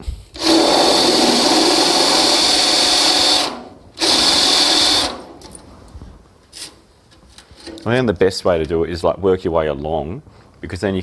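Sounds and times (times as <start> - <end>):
faint handling noises: 5.4 - 8.8
man speaking: 7.8 - 11.0.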